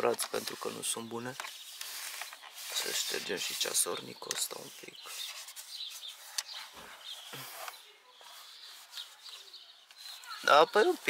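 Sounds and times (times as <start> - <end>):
cloth rubbing on plastic: 0.3 - 11.0.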